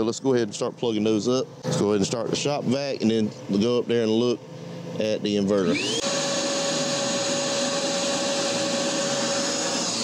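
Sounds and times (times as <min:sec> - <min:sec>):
shop vacuum running: 0:00.0 - 0:10.0.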